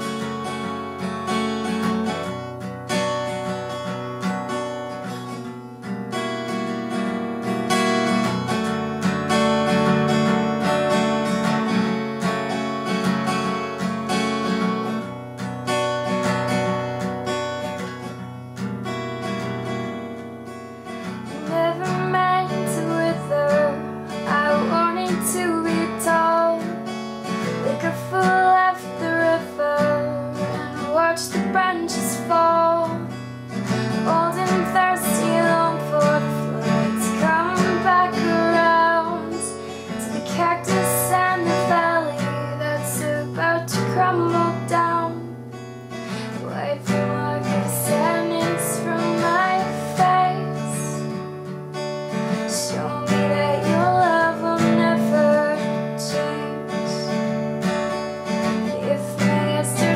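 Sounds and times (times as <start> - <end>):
acoustic guitar strumming: 0.0 - 59.9
woman singing softly: 21.3 - 45.4, 46.2 - 51.2, 52.3 - 57.3, 58.4 - 59.9.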